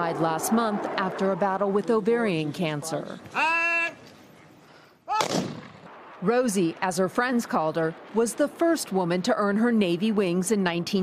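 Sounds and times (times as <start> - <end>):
rifle volley crack: 5.1 - 10.1.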